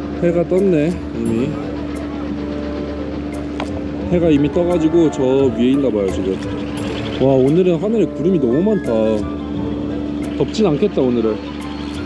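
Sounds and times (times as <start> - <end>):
ferry engine droning: 0.0 - 12.0.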